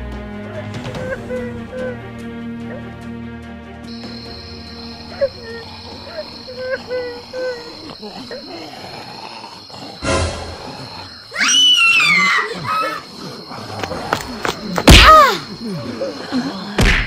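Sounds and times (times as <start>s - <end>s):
high falling cartoon cry: 11.3s - 13.1s.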